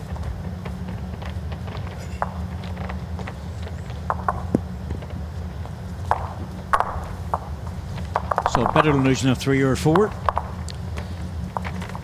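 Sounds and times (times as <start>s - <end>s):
indoor arena low hum: 0.0s - 12.0s.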